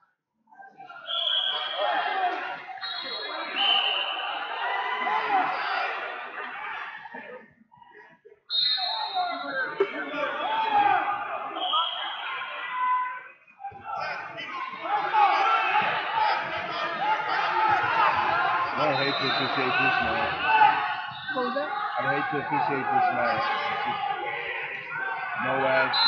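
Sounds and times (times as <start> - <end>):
crowd calling and talking: 0.5 - 26.0.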